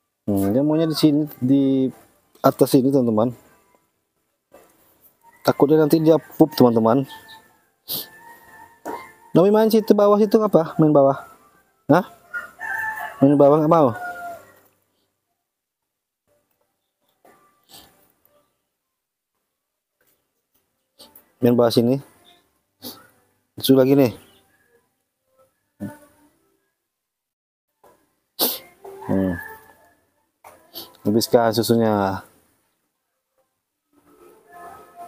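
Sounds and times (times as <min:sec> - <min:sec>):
rooster crowing: 0:05.3 - 0:07.6, 0:12.1 - 0:14.7, 0:28.9 - 0:29.9.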